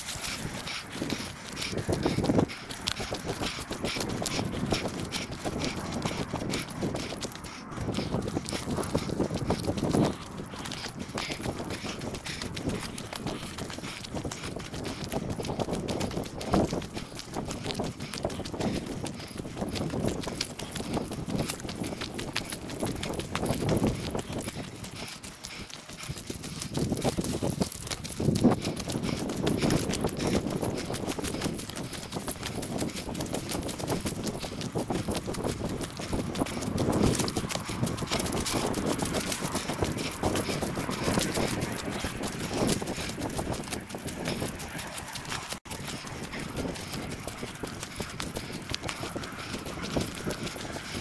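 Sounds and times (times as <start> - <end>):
footsteps crunching on dry leaves: 0.0 - 2.9.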